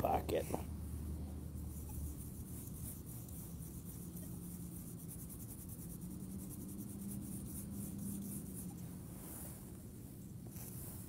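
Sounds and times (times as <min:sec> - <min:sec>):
toothbrush scrubbing metal: 0:01.4 - 0:08.8.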